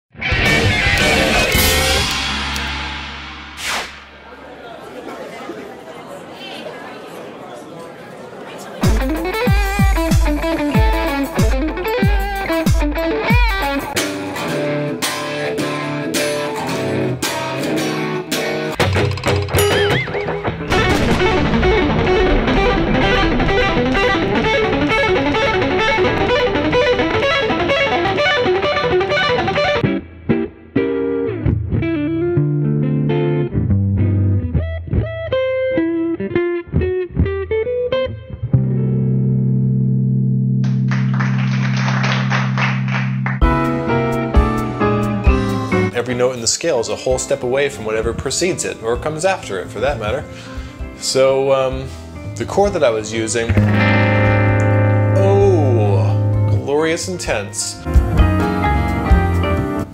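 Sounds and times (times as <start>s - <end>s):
electric guitar playing: 0.1s - 4.3s, 8.8s - 45.9s, 53.0s - 59.9s.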